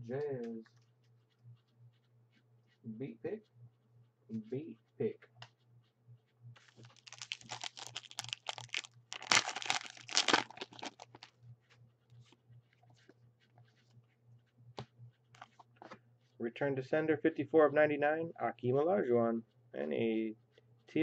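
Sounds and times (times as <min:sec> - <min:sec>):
cards clicking and rustling: 0:06.7 - 0:11.3
wrapper tearing and crinkling: 0:06.7 - 0:11.3.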